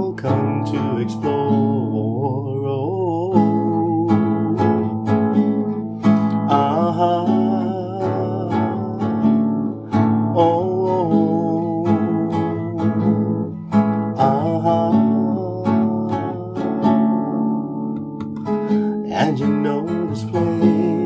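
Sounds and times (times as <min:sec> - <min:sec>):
man singing: 0:00.0 - 0:05.4, 0:06.1 - 0:21.0
acoustic guitar strumming: 0:00.0 - 0:21.0.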